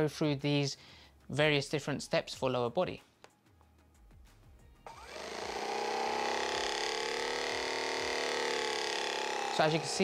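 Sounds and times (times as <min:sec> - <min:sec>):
massage gun motor hum: 0:04.9 - 0:10.0.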